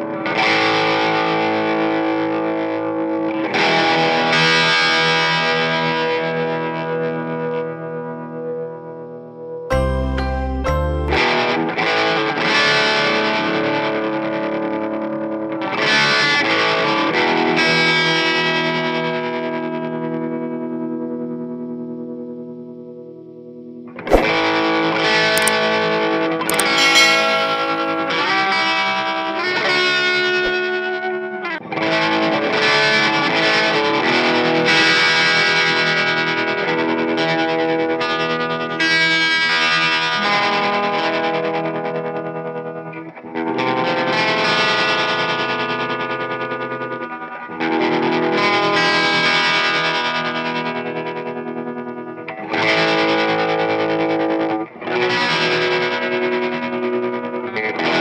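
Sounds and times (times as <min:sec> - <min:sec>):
distorted electric guitar: 0:09.7 - 0:13.4.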